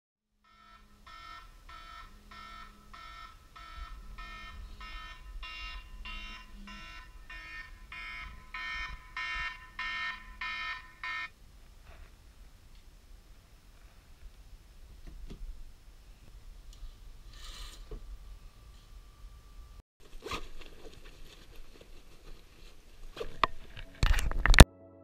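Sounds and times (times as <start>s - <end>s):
phone alarm beeping: 0.5s - 11.3s.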